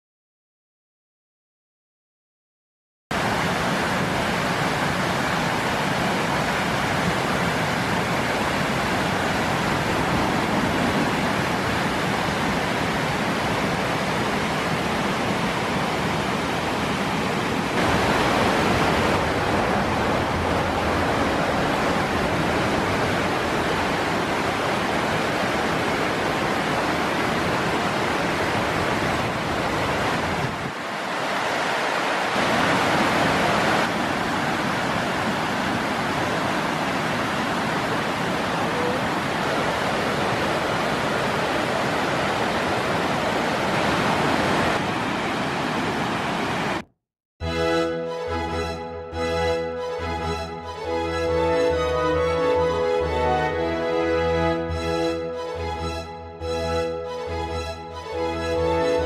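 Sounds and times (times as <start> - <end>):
stream rushing over rocks: 3.2 - 46.8.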